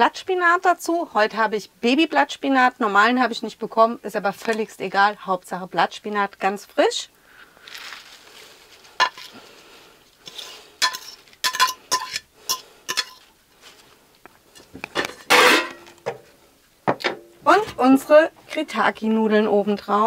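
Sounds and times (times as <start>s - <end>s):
spoon scraping pan: 9.0s - 9.4s, 10.2s - 13.8s, 14.5s - 16.0s
spoon clinking against bowl: 10.8s - 13.2s.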